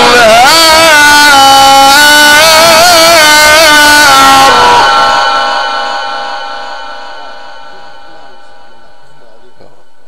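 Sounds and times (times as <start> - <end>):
man reciting melodically: 0.0 - 5.2
sound system echo: 0.0 - 10.0.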